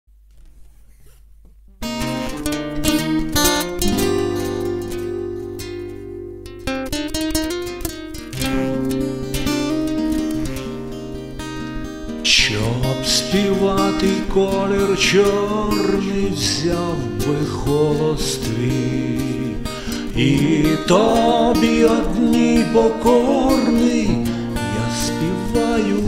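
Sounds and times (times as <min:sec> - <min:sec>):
acoustic guitar chords: 0:01.7 - 0:26.0
man singing: 0:12.2 - 0:26.0.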